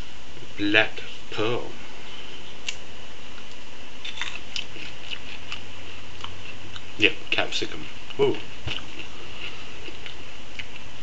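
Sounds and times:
background hiss: 0:00.0 - 0:11.0
chilli cracking between fingers: 0:02.6 - 0:02.8.

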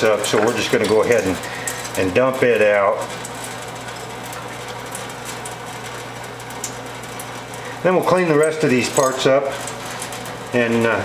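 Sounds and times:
tap water running into metal sink: 0:00.0 - 0:11.0.

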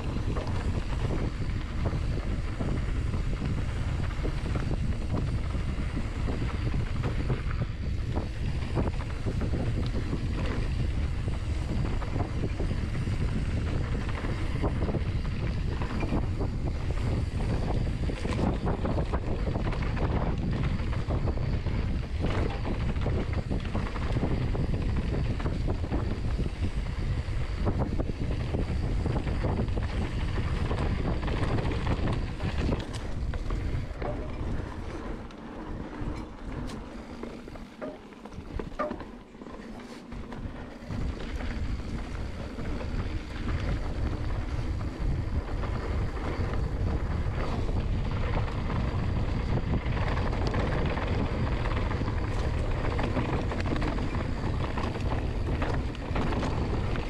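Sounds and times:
tyre noise on dirt trail: 0:00.0 - 0:57.0
wind buffeting microphone: 0:00.0 - 0:57.0.

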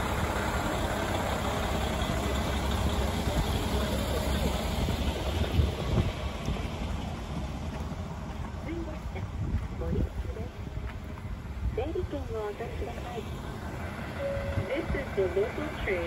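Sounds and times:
diesel railcar engine rumbling: 0:00.0 - 0:16.0.

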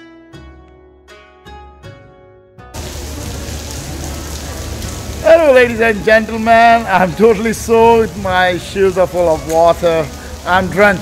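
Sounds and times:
rain on wet paving: 0:02.8 - 0:11.0.

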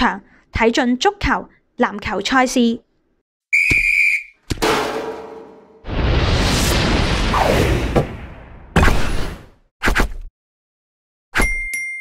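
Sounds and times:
whistle blast: 0:03.5 - 0:04.4
sharp hit with ringing tone: 0:04.6 - 0:05.9
loud burst of noise: 0:05.1 - 0:08.4.

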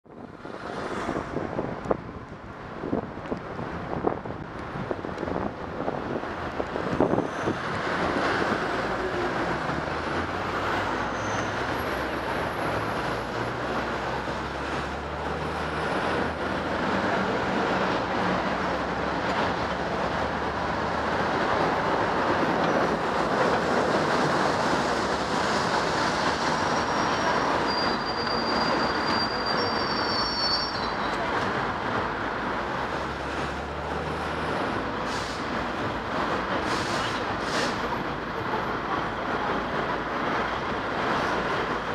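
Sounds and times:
wind and road rush: 0:00.0 - 0:41.9
short high-pitched squeal: 0:26.6 - 0:31.2.

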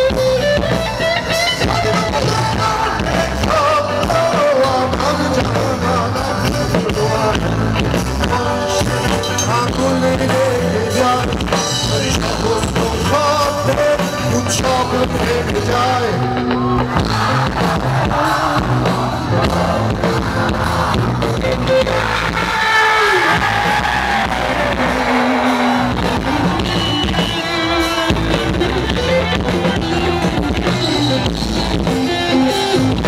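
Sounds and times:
bass guitar: 0:00.0 - 0:33.0
drum kit: 0:00.0 - 0:33.0
electric guitar: 0:00.0 - 0:33.0.

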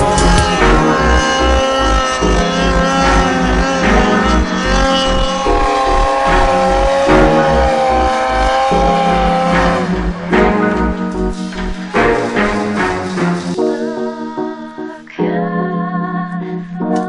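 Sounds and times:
steady low drum beat: 0:00.0 - 0:13.6
instrumental music with held chords: 0:00.0 - 0:17.0.

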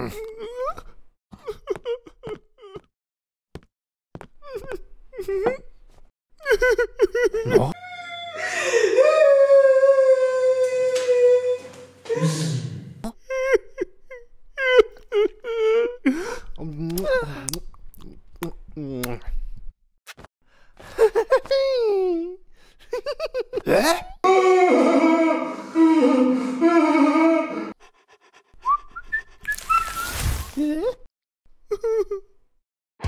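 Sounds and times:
whistling sliding notes: 0:28.6 - 0:30.4.

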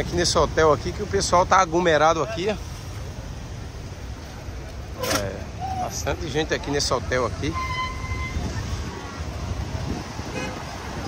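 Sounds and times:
traffic engine rumble: 0:00.0 - 0:11.0
short horn toot: 0:07.5 - 0:08.5.

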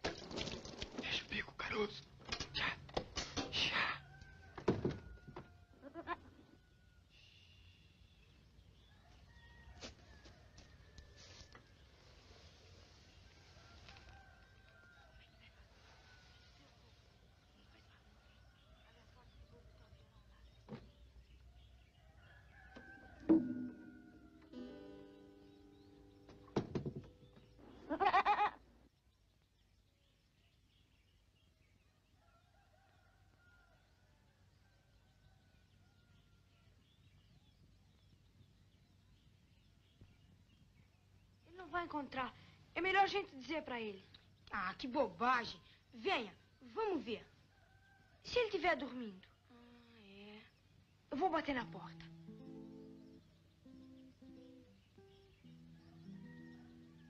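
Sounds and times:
goat bleating: 0:05.8 - 0:06.3
sharp knocks on guitar: 0:23.2 - 0:23.9, 0:26.2 - 0:27.5
acoustic guitar strings ringing: 0:23.3 - 0:26.5.

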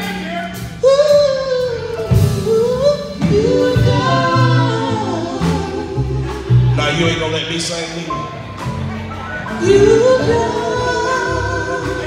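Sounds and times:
gospel group singing in harmony: 0:00.0 - 0:12.0.

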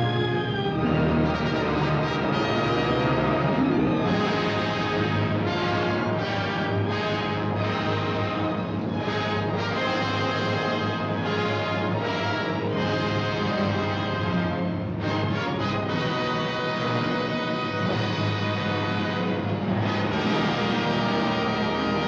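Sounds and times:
orchestral trailer music: 0:00.0 - 0:22.0.

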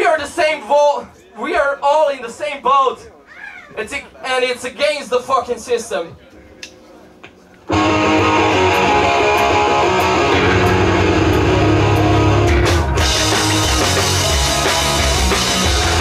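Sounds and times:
live pop-punk band: 0:07.7 - 0:16.0.

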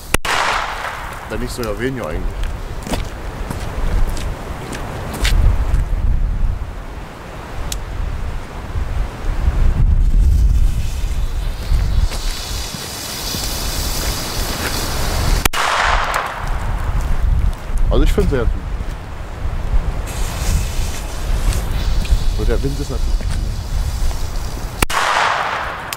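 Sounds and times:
wind buffeting microphone: 0:00.3 - 0:25.9
hiss: 0:10.1 - 0:15.5, 0:20.0 - 0:25.9.

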